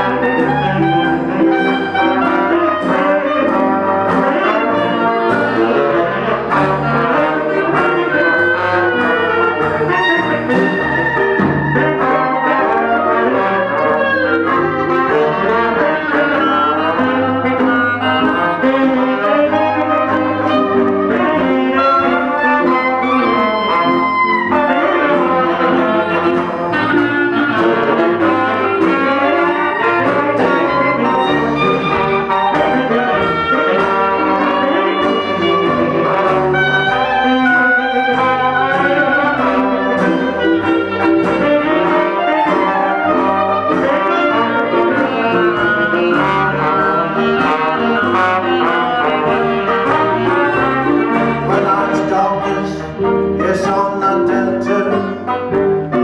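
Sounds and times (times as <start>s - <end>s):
jazz band playing live: 0.0s - 56.0s.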